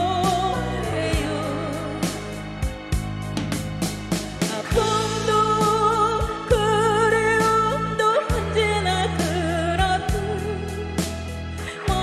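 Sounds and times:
woman singing pop song: 0.0s - 2.8s, 4.4s - 12.0s
backing track with bass and drums: 0.0s - 12.0s.

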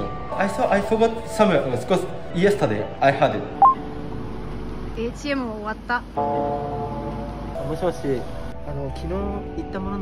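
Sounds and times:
two-note electronic beep: 3.6s - 3.8s.

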